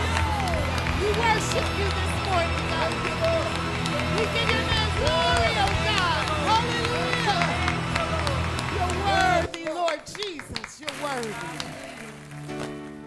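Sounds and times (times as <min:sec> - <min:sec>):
sustained accompaniment chords: 0:00.0 - 0:09.6.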